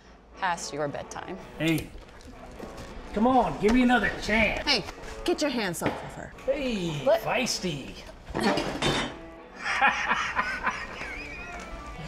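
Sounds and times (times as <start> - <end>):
faint background music: 0.0 - 12.0
man laughing: 9.6 - 11.9.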